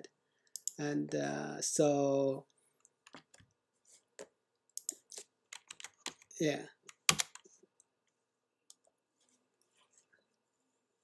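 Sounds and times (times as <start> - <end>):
computer keyboard keystrokes: 4.8 - 6.3, 6.9 - 7.4.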